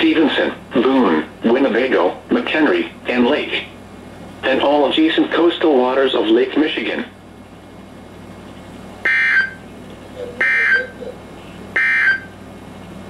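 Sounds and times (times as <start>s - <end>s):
warbling digital data tones: 9.1s - 11.2s.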